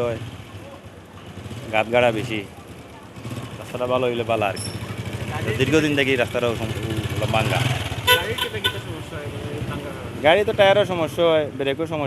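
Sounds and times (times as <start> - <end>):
street traffic: 0.0 - 12.0
vehicle horn short toots: 8.0 - 9.0.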